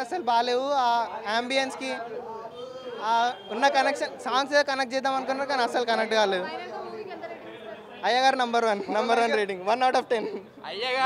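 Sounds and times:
group chatter: 0.0 - 11.0.

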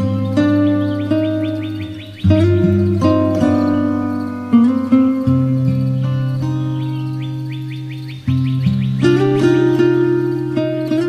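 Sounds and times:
plucked acoustic guitar: 0.0 - 11.0.

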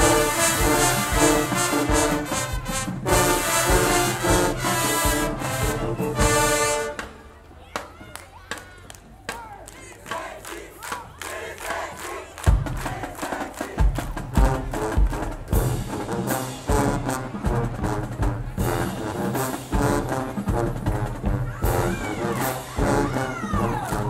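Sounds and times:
heavy drum beats: 0.0 - 7.2, 12.4 - 24.0
people chanting in unison: 9.4 - 14.1.

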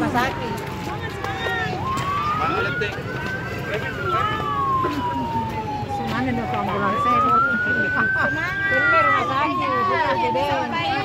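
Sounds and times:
ambulance siren wailing: 0.0 - 11.0
people's voices: 0.0 - 11.0.

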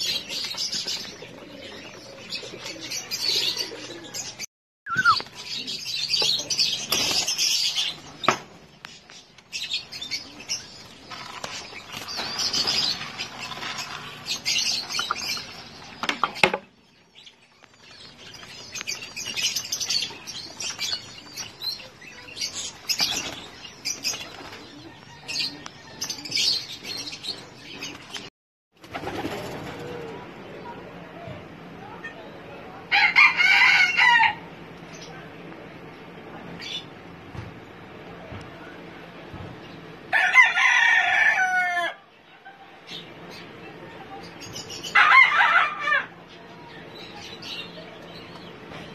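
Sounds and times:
pigeon wings flapping and scuffling: 27.8 - 30.2
rooster crowing: 32.9 - 34.5, 40.1 - 42.1, 44.9 - 46.2.

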